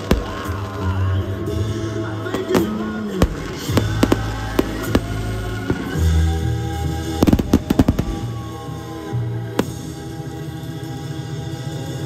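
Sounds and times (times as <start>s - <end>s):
fireworks bangs and pops: 0.0s - 8.8s, 9.5s - 10.3s
music: 0.0s - 12.0s.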